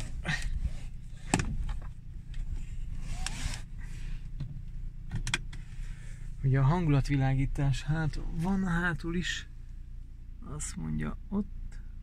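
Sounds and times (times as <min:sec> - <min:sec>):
seatbelt webbing rustling: 0:00.0 - 0:06.4
car engine idling: 0:00.0 - 0:12.0
seatbelt buckle clicks: 0:01.2 - 0:03.7, 0:05.1 - 0:05.7.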